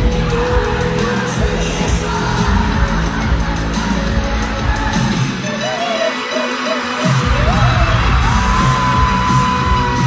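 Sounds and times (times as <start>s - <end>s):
live pop band: 0.0s - 10.0s.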